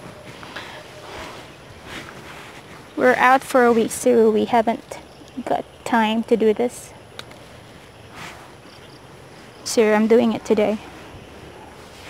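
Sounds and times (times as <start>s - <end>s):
soft rustle of petals: 0.0s - 4.1s
quiet outdoor background: 0.0s - 12.0s.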